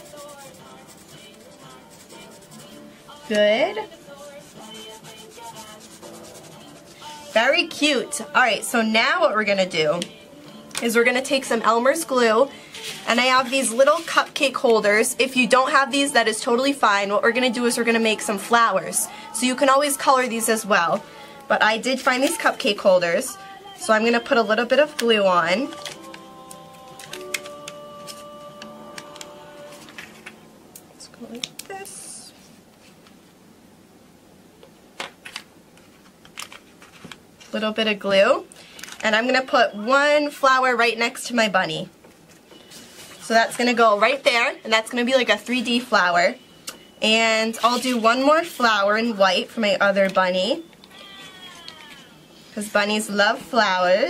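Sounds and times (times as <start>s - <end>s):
marker rubbing on paper: 0.0s - 2.8s, 4.2s - 7.0s
quiet background music chords: 0.0s - 32.5s.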